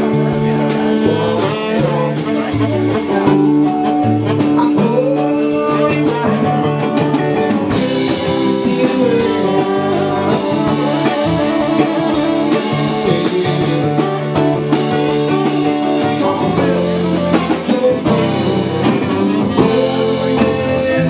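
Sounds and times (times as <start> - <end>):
drum kit with cymbals: 0.0 - 21.0
strummed acoustic guitar: 0.0 - 21.0
saxophone long notes: 7.7 - 21.0.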